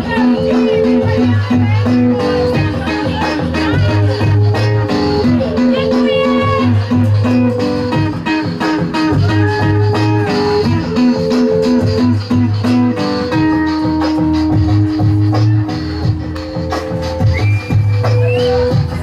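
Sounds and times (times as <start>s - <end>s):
plucked guitar-like notes: 0.0s - 19.0s
repeating low bass figure: 0.0s - 19.0s.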